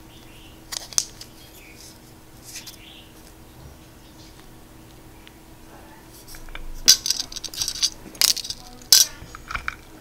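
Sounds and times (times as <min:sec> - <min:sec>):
coins clicking on ceramic plate: 0:06.9 - 0:09.1.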